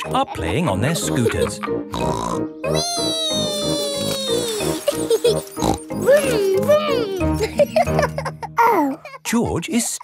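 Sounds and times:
upbeat children's music: 0:00.0 - 0:10.0
cartoon child calling wheee: 0:02.6 - 0:04.7.

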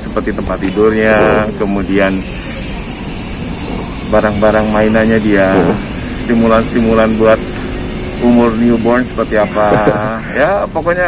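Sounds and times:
man's voice: 0:00.0 - 0:02.3, 0:04.1 - 0:07.6, 0:08.2 - 0:11.0
city street rumble: 0:00.0 - 0:11.0.

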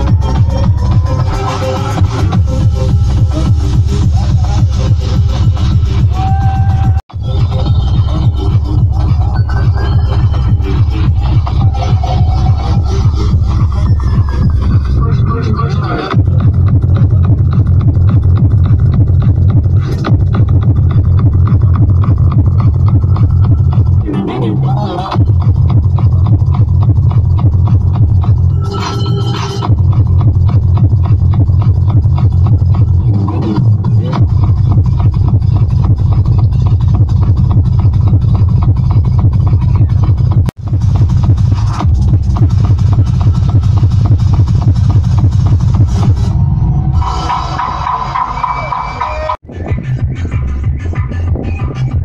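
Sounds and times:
techno dance music: 0:00.0 - 0:52.0
heavy kick drum: 0:16.2 - 0:24.1, 0:25.2 - 0:28.4, 0:29.7 - 0:33.0, 0:34.2 - 0:46.2.

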